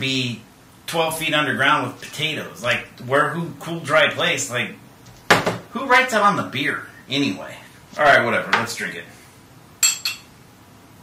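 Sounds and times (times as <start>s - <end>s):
glass bottle clinking: 9.8s - 10.3s.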